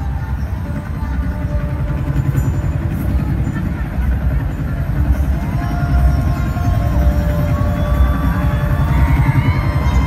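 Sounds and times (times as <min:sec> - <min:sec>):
helicopter rotor chop over speakers: 0:00.0 - 0:10.0.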